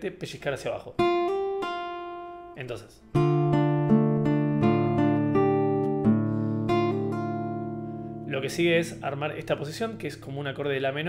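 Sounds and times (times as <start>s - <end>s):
nylon-string guitar fingerpicking: 1.0s - 10.8s.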